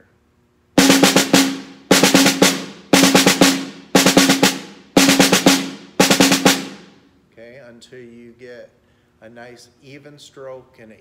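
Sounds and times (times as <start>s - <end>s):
snare drum rolls: 0.8s - 7.0s.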